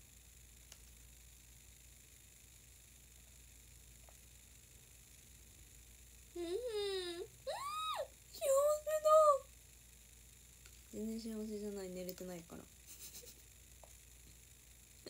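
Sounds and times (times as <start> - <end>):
faint click: 0.6 - 1.0
woman humming mmm: 6.4 - 8.1.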